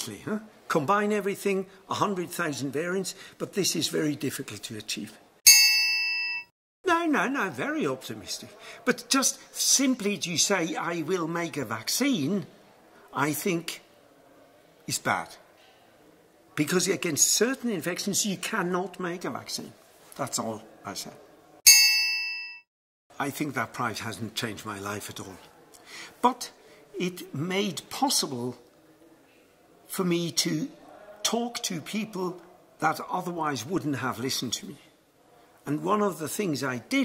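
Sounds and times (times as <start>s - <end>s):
metallic bell-like ding: 5.5s - 6.5s, 21.7s - 22.6s.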